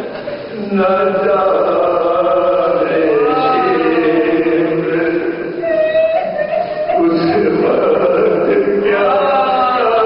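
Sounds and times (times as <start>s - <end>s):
man chanting: 0.5s - 5.6s, 6.6s - 10.0s.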